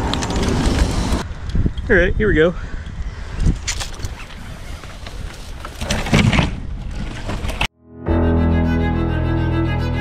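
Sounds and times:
wind rumble on microphone: 0:00.0 - 0:07.6.

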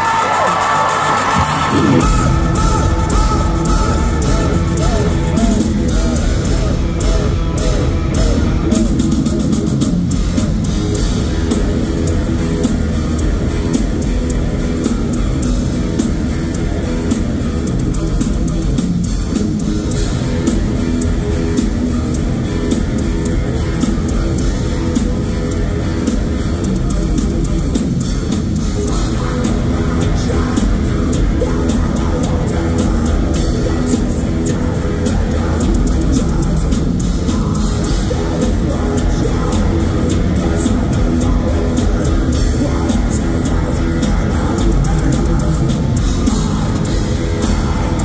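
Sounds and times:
bass guitar: 0:00.0 - 0:48.0
distorted electric guitars: 0:00.0 - 0:48.0
drums: 0:00.0 - 0:48.0.

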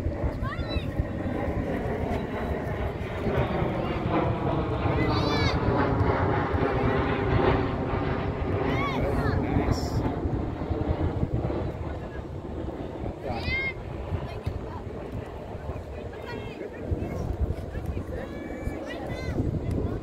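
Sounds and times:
distant engine drone: 0:00.0 - 0:20.0.

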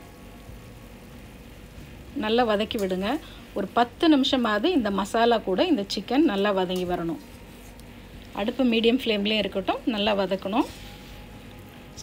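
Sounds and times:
chicken frying in oil: 0:00.0 - 0:12.0.

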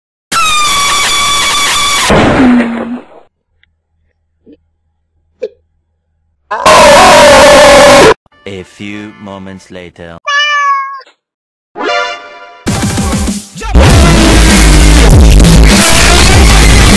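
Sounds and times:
noisy crash: 0:02.0 - 0:03.3, 0:13.8 - 0:16.9.

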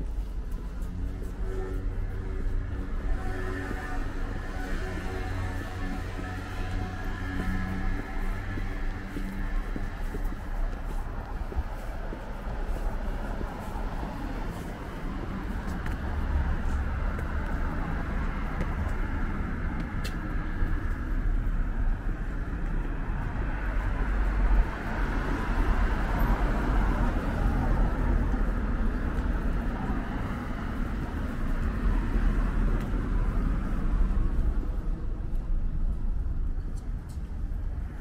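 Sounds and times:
low traffic rumble: 0:00.0 - 0:38.0.

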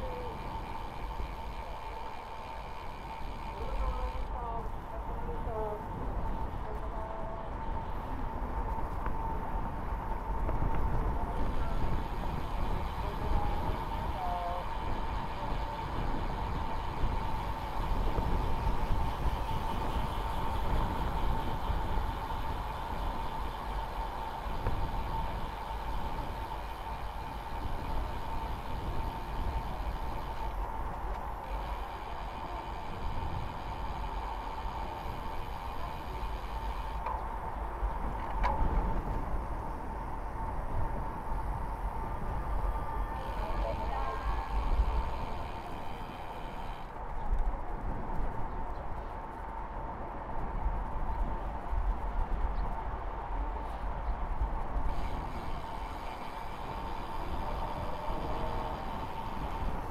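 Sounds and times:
bike tyre and road noise: 0:00.0 - 0:59.9
wind rumbling on microphone: 0:00.0 - 0:59.9.

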